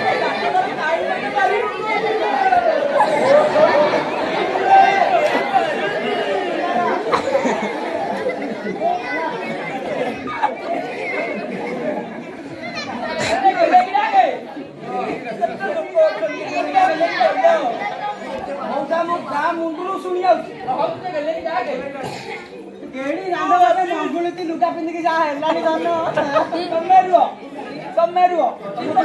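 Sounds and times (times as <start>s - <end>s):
crowd chatter: 0.0s - 29.0s.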